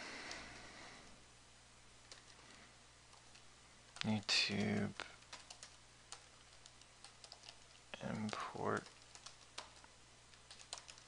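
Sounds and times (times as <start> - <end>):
faint keyboard keystrokes: 3.1 - 11.0.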